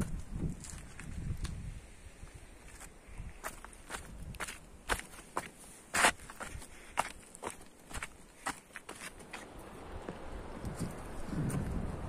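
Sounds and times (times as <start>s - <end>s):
footsteps on dry grass and stones: 0.0s - 11.9s.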